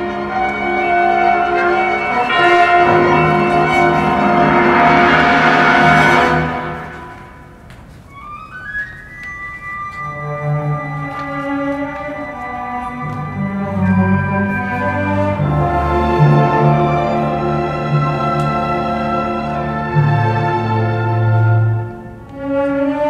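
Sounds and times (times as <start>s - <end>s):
symphony orchestra playing: 0.0s - 23.0s.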